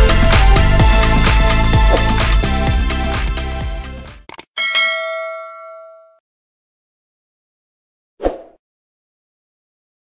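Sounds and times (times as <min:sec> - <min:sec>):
bell-like ding: 0:04.6 - 0:06.2.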